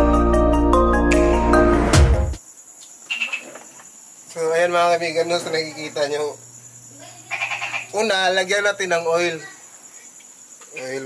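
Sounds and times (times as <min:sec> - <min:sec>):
crickets chirring: 0:02.4 - 0:11.0.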